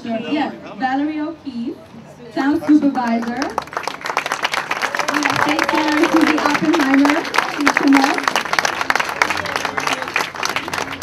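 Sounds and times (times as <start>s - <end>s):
crowd applauding: 3.0s - 11.0s.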